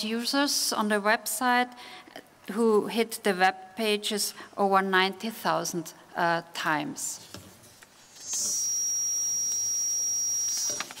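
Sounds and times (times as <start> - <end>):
high-pitched electronic tone: 8.2 - 11.0.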